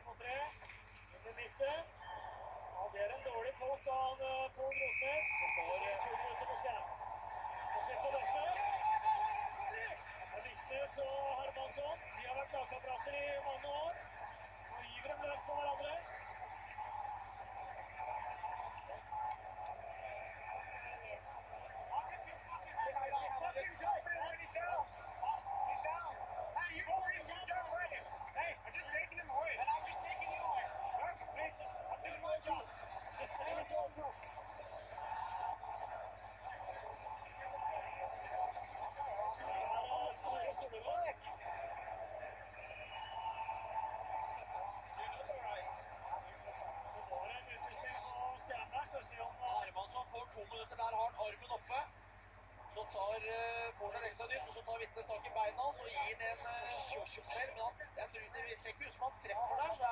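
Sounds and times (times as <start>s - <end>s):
crowd shouting and talking: 0.0s - 59.9s.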